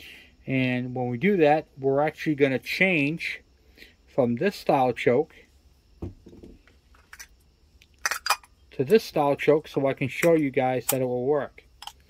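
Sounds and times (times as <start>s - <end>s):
handling small metal parts: 8.0s - 8.5s.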